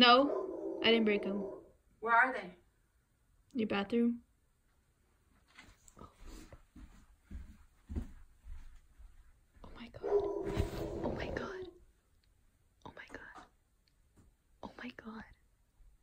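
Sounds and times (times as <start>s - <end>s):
hushed whispering: 11.0s - 11.8s, 12.8s - 13.5s, 14.6s - 15.4s.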